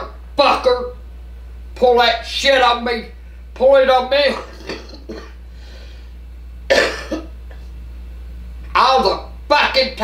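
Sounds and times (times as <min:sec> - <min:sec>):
woman coughing: 0:04.3 - 0:05.4, 0:06.7 - 0:07.4.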